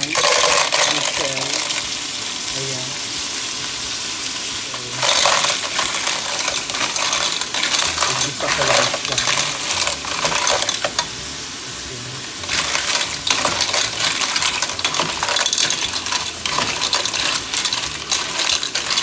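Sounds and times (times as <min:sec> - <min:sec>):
clam shells clattering: 0:00.0 - 0:01.7, 0:05.0 - 0:11.1, 0:12.4 - 0:19.0
pan sizzling: 0:00.0 - 0:19.0.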